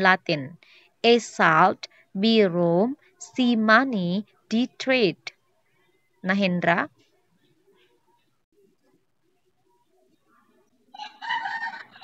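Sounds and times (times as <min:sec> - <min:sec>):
rooster crowing: 0:10.9 - 0:12.0.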